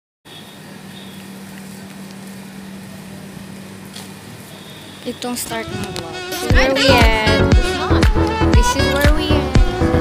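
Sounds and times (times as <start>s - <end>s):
low mechanical hum: 0.3s - 10.0s.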